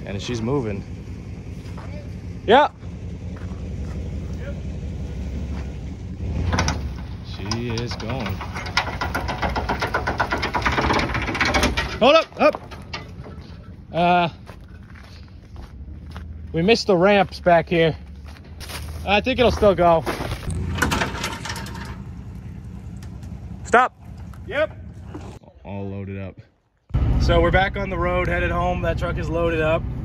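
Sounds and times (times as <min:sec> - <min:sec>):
engine running under load: 0:00.0 - 0:25.4.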